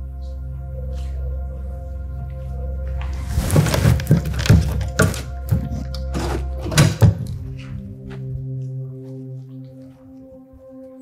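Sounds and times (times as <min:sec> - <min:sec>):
soft background music: 0:00.0 - 0:11.0
knocks and thuds of handling: 0:03.4 - 0:07.4.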